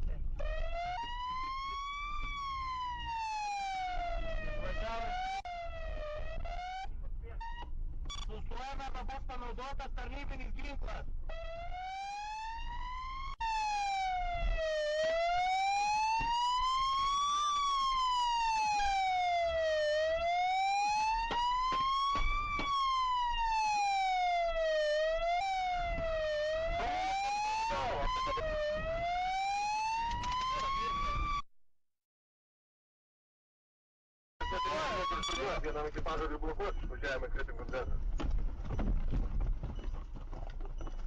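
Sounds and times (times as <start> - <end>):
police siren wailing: 0.0 - 7.7, 10.8 - 31.4, 34.4 - 37.9.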